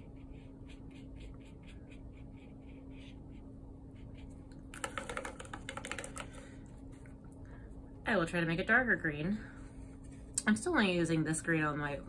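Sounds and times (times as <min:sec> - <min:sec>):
faint steady hum: 0:00.0 - 0:12.0
paintbrush clicks and taps: 0:04.5 - 0:06.5.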